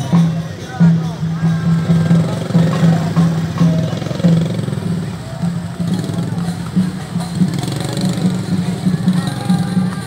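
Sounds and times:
crowd talking: 0.0s - 10.0s
drum beat: 0.0s - 10.0s
motorcycle engines running: 0.0s - 10.0s.

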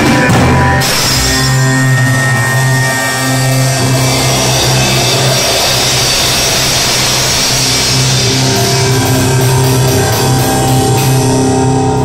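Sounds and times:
rock music: 0.0s - 12.0s
held low note: 0.7s - 12.0s
wash of cymbals: 0.8s - 12.0s.

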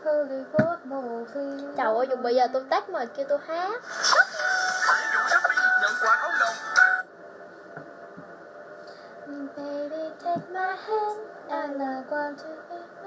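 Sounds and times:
woman singing unaccompanied: 0.0s - 2.7s, 9.3s - 13.0s.

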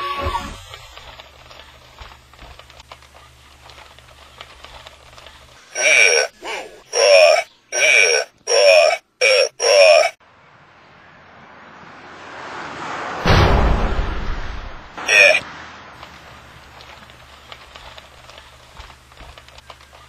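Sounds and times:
toy robot gruff voice: 5.8s - 10.2s, 15.0s - 15.4s
whooshing noise: 12.5s - 15.9s.

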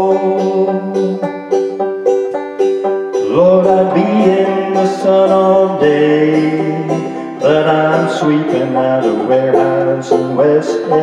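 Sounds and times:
banjo picking: 0.0s - 11.0s.

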